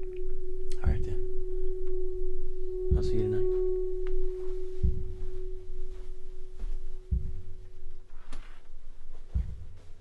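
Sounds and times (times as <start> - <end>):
sustained pure tone drone: 0.0 - 10.0
deep low thuds: 0.3 - 10.0.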